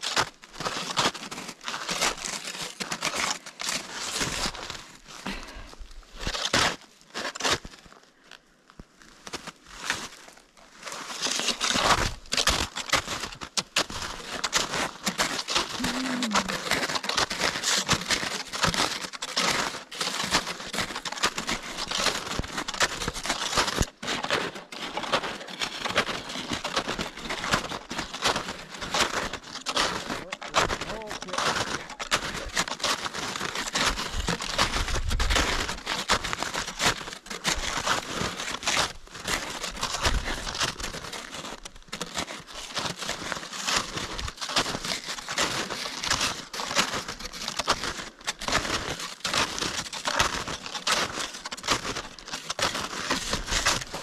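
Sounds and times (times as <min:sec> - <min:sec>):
snowshoes crunching through snow: 0:00.0 - 0:08.0, 0:09.0 - 0:54.0.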